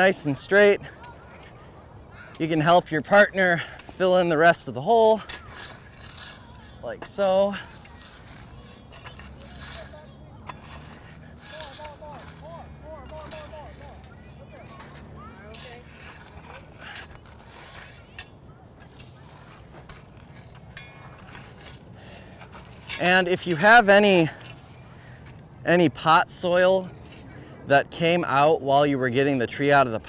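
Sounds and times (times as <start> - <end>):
faint voices: 0.0 - 23.8
shovels scraping soil: 0.0 - 26.2, 26.9 - 27.6.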